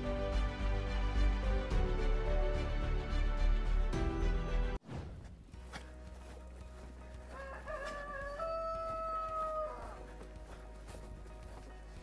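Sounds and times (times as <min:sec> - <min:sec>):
rooster crowing: 0:07.3 - 0:10.0.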